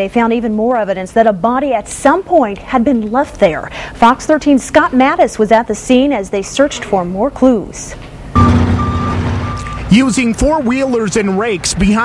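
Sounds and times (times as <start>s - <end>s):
vehicle engine running: 8.4s - 9.8s
high warning beeper: 8.4s - 10.5s.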